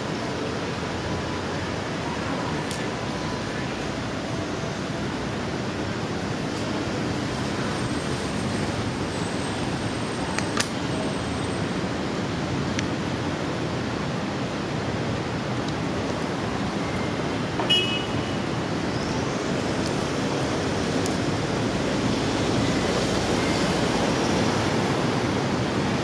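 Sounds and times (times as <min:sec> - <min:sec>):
city traffic: 0:00.0 - 0:26.0.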